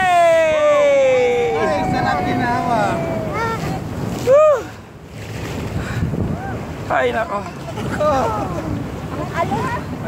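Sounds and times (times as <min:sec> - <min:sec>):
water rushing: 0:00.0 - 0:10.0
wind buffeting microphone: 0:00.0 - 0:10.0.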